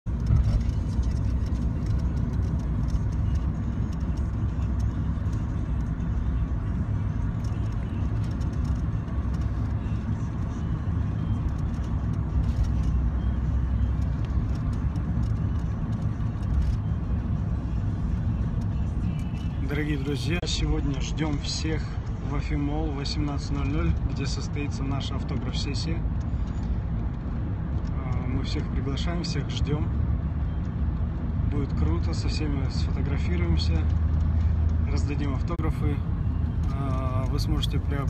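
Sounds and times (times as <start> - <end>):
car engine and road noise: 0.0 - 38.0.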